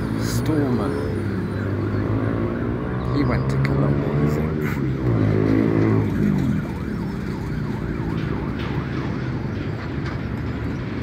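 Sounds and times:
siren wailing: 0.0 - 10.0
road traffic noise: 0.0 - 11.0.

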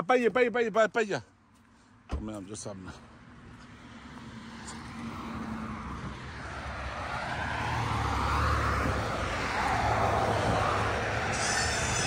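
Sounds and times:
vehicle approaching on road: 2.3 - 12.0.

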